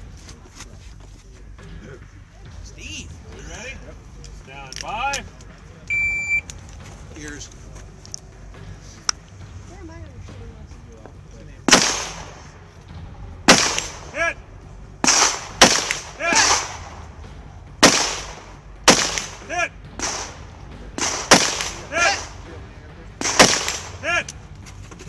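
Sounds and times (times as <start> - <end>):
single gunshots: 11.7 - 12.5, 13.5 - 14.2, 15.0 - 17.0, 17.8 - 22.4, 23.2 - 24.0.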